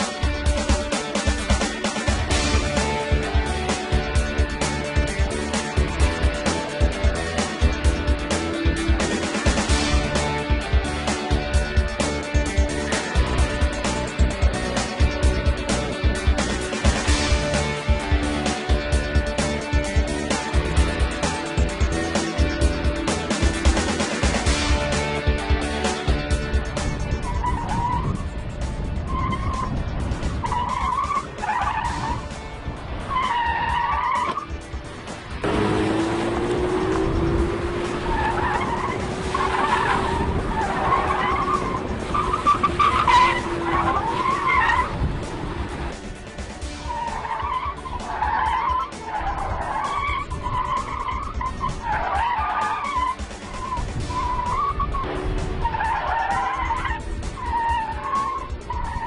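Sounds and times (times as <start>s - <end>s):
car tyres squealing: 26.4s - 46.1s, 46.8s - 59.0s.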